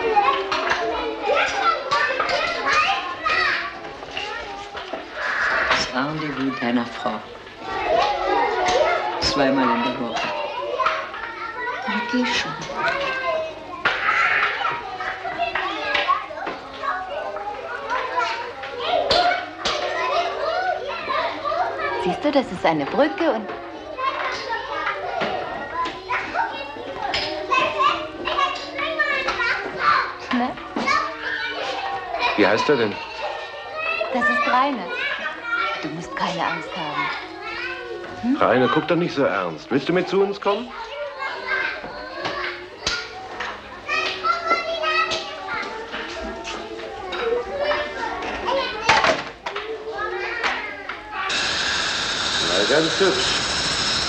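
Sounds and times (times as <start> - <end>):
children playing and chattering: 0.0 - 54.0.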